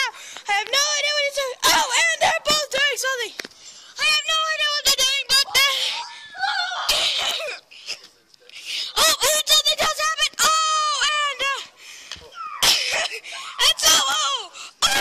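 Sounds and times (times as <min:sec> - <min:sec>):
children yelling and squealing: 0:04.0 - 0:07.6, 0:09.0 - 0:15.0.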